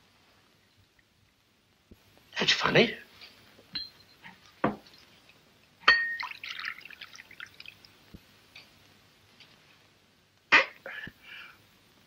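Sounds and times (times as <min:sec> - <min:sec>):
crockery knocking: 0:04.6 - 0:04.9
china crockery clinking: 0:05.9 - 0:06.2
tea pouring from a teapot: 0:06.0 - 0:08.0.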